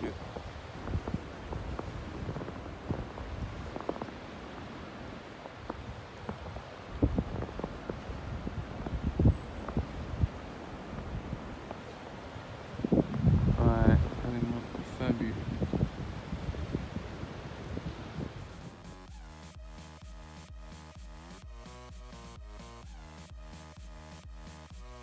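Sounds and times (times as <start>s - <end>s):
low rumble on microphone: 0.0s - 4.8s, 5.7s - 11.8s, 12.6s - 18.8s
footsteps on snow: 0.0s - 13.2s.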